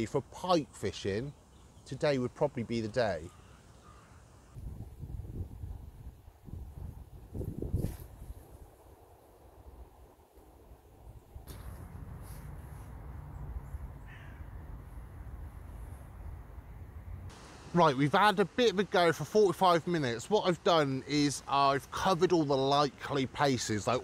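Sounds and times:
wind noise: 0:04.6 - 0:10.1.

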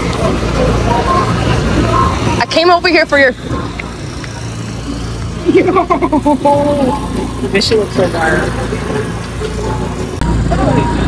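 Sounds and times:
low motor hum: 0:00.0 - 0:11.0
woman talking: 0:02.1 - 0:03.5.

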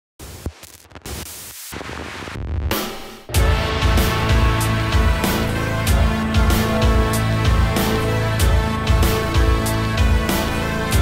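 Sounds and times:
static noise: 0:00.2 - 0:03.3.

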